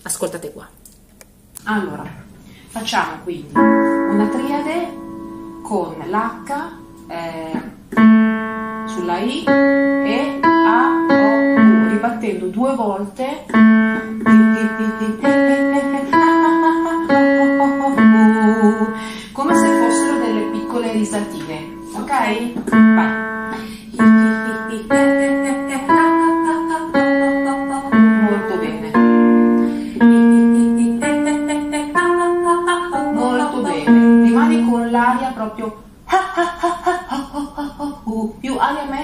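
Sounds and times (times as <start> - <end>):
digital keyboard notes: 3.5 - 35.4.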